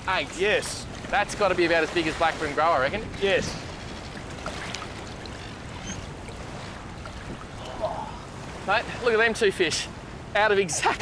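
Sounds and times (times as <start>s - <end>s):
wind rumble on microphone: 0.0s - 9.0s
waves washing against rocks: 0.0s - 9.3s.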